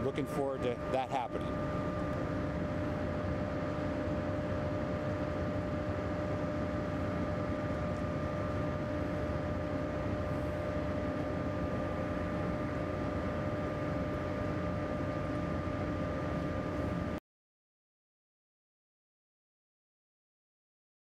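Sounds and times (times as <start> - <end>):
drilling machinery drone: 0.0 - 17.2.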